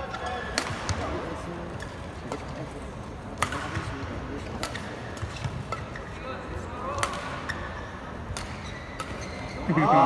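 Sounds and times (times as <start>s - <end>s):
rackets hitting shuttlecock: 0.1s - 1.2s, 3.3s - 6.2s, 6.8s - 9.9s
shoe squeaks on court: 8.6s - 9.8s.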